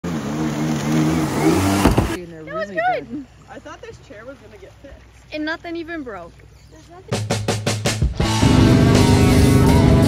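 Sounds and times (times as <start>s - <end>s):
jet ski engine running hard: 0.1s - 2.2s.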